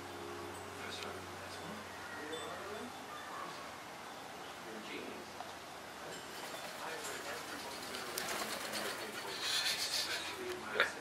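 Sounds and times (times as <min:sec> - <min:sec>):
duck wings flapping: 0:06.4 - 0:10.1.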